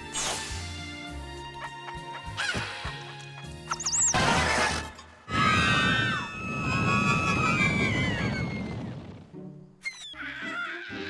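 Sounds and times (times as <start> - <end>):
cartoon soundtrack music: 0.0 - 5.2, 7.0 - 11.0.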